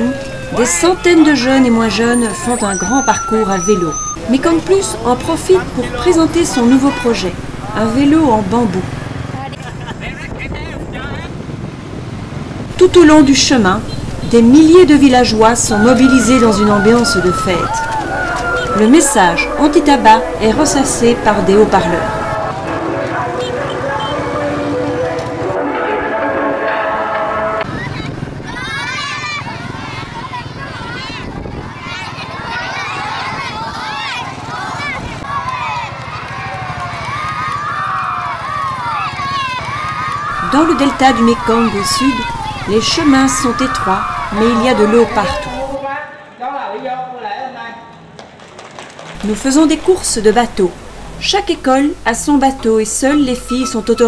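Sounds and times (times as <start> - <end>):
children shouting: 0.0 - 4.8, 15.5 - 24.4, 26.6 - 45.8
faint high-pitched voices calling: 0.0 - 4.8, 15.1 - 22.4, 40.3 - 45.8.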